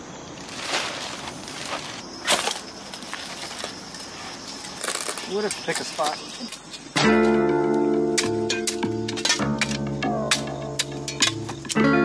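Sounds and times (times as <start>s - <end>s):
woodland ambience: 0.0s - 12.0s
sharp rustles or scuffs: 0.4s - 6.9s.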